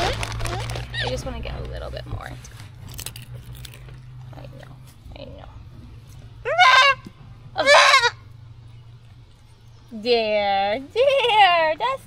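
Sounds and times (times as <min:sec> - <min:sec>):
goat kid bleating: 0:06.5 - 0:08.2.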